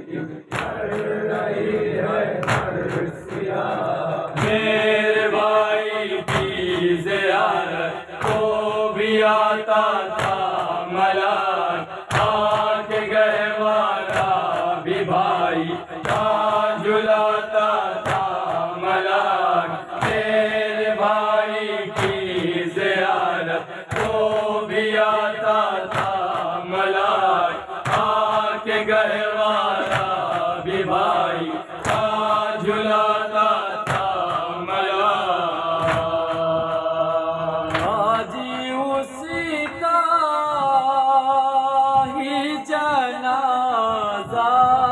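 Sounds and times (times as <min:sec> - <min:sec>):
men chanting a lament: 0:00.0 - 0:44.9.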